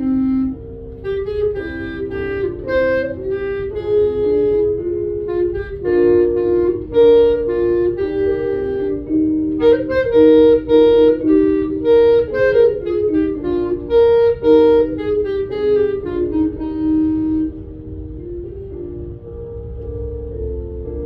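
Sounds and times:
clarinet slow solo melody: 0.0 - 21.0.

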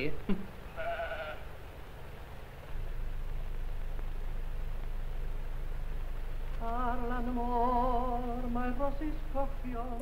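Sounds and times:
film soundtrack hiss: 0.0 - 10.0
sheep bleating: 0.7 - 1.5.

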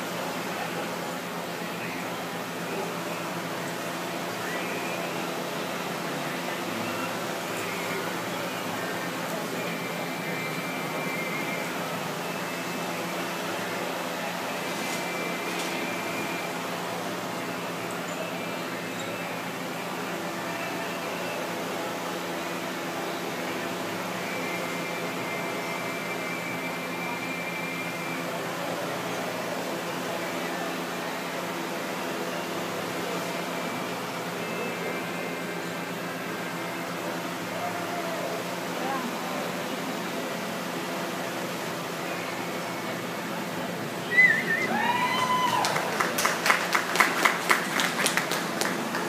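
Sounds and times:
ventilation hiss and hum: 0.0 - 49.0.

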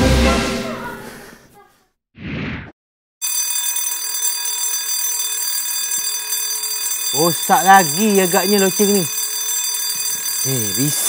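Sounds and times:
background music: 0.0 - 1.0
fire alarm bell ringing: 3.2 - 11.0.

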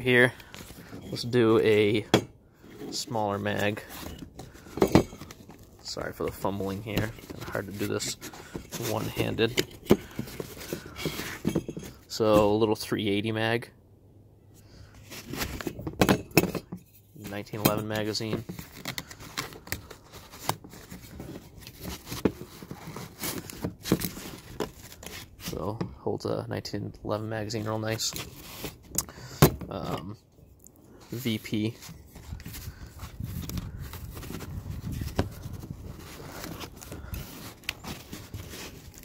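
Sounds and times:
fabric rubbing and scraping: 31.1 - 39.0.

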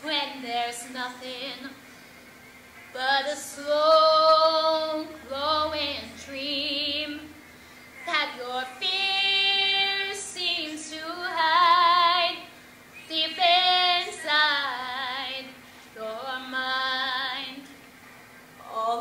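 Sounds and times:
girl singing with vibrato: 0.0 - 1.8, 2.9 - 7.4, 8.0 - 17.7, 18.6 - 19.0.

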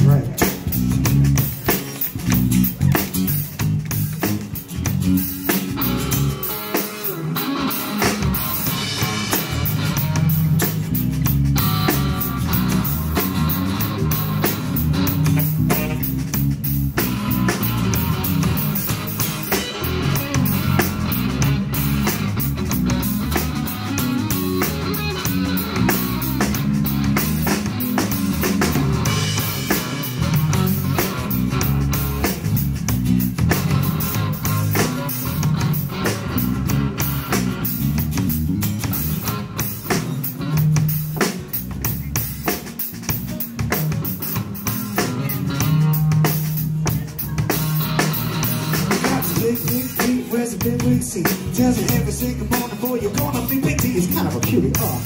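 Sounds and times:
drum kit: 0.0 - 55.0
electric bass: 0.0 - 55.0
guitars: 0.0 - 55.0
live band playing: 0.0 - 55.0.

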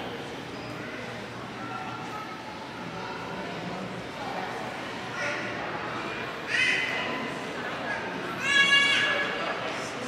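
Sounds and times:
murmur of people talking: 0.0 - 10.0.

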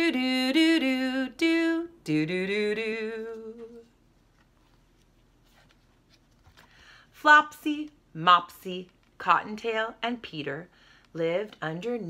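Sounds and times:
woman singing wordless tune: 0.0 - 4.0, 7.2 - 10.6, 11.2 - 12.0.

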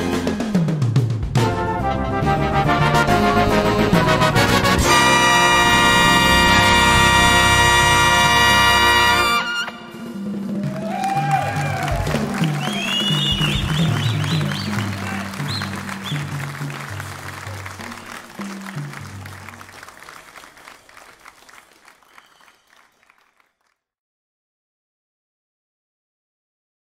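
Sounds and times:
audience applauding and cheering: 2.3 - 23.8
shrill whistles: 11.1 - 16.4, 20.3 - 23.4.

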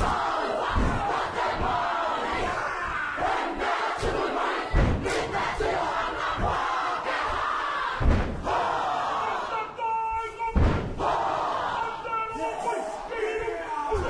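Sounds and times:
stamping feet and body slaps: 0.0 - 1.8, 4.0 - 5.5, 8.0 - 8.6, 10.6 - 11.2
group chanting in unison: 0.0 - 14.0.

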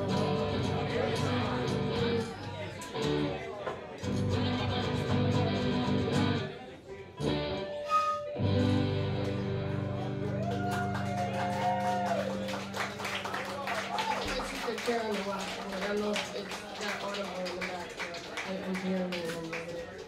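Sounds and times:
live band playing guitars: 0.0 - 16.6.

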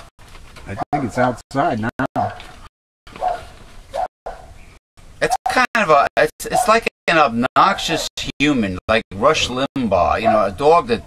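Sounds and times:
dog barking: 0.7 - 2.5, 3.1 - 4.5, 6.5 - 6.8, 10.2 - 10.6.

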